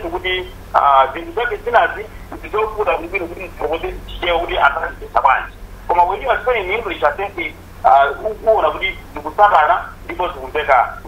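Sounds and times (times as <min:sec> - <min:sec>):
person talking telephone-like voice: 0:00.0 - 0:11.0.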